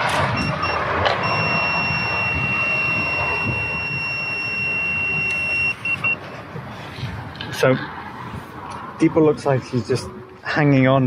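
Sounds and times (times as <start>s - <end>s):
breathalyser beeps: 0.4s - 6.2s
breathalyser high-pitched tone: 1.3s - 6.2s.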